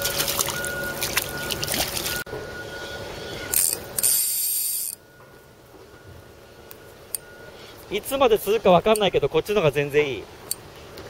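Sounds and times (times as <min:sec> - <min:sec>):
fishing reel spinning: 0:03.5 - 0:05.0.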